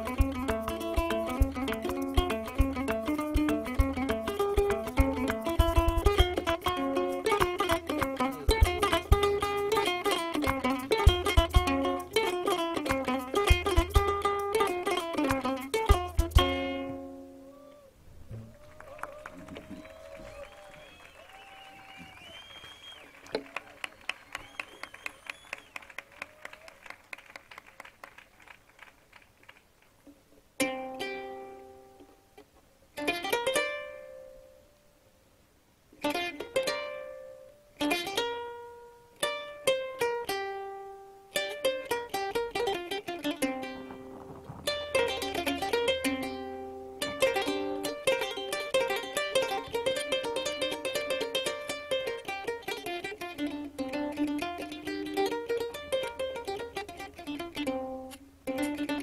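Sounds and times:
plucked lute melody: 0.0s - 18.5s, 30.6s - 34.9s, 35.9s - 59.0s.

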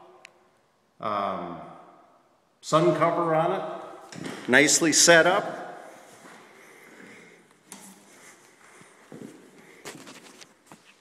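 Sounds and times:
footsteps on hard floor: 5.8s - 11.0s.

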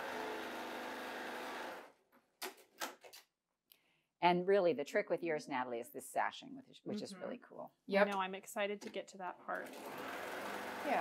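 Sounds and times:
sewing machine stitching: 0.0s - 2.0s, 9.5s - 11.0s.

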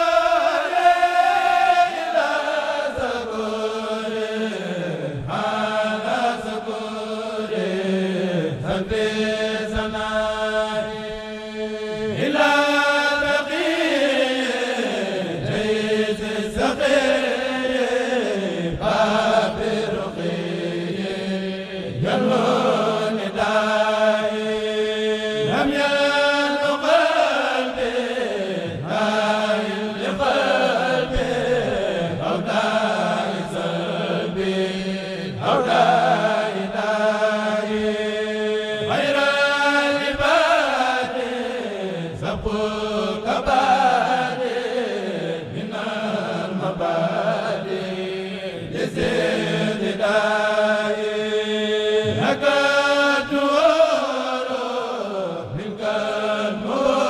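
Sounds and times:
men chanting unaccompanied: 0.0s - 57.0s.

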